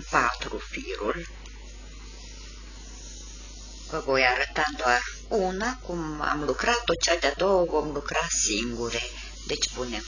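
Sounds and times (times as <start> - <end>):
steady background hiss: 0.0 - 10.0
person speaking: 3.8 - 10.0.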